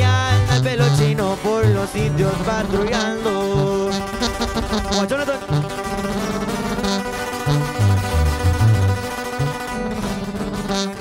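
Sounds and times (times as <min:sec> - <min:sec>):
acoustic guitars picked and strummed: 0:00.0 - 0:11.0
low bass line: 0:00.0 - 0:11.0.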